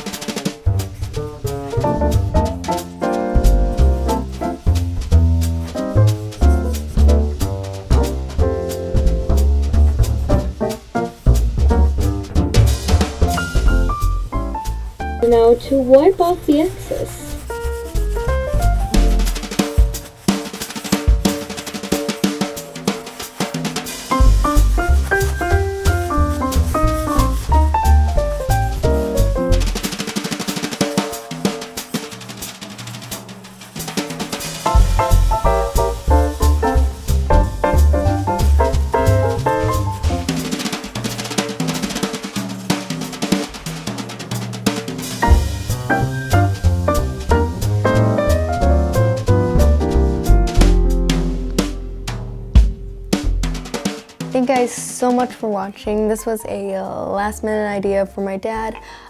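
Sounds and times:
instrumental melody: 0.0 - 31.9, 34.4 - 40.7
drum kit: 0.0 - 56.4
bass line: 0.7 - 19.9, 24.1 - 29.9, 34.7 - 40.4, 45.2 - 53.6.

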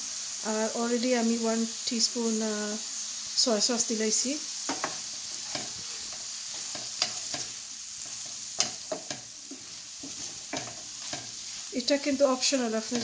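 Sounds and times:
vegetables sizzling in a pan: 0.0 - 13.0
wooden spoon scraping a pan: 4.7 - 13.0.

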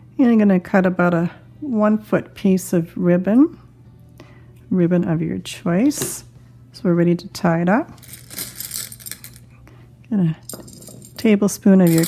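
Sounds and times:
jelly beans rattling: 8.0 - 9.5.

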